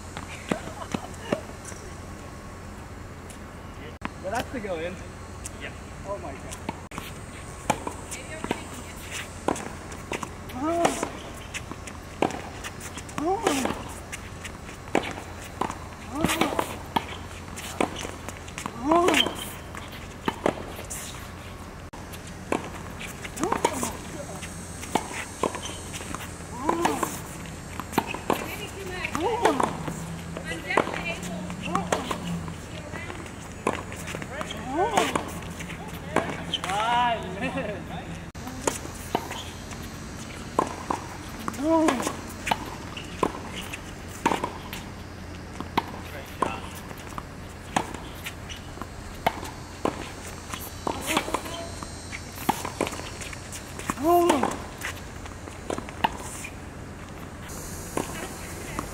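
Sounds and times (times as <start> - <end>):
tennis ball hit with rackets: 7.6 - 21.2, 22.4 - 37.0, 38.6 - 45.0, 45.6 - 55.0, 57.9 - 58.9.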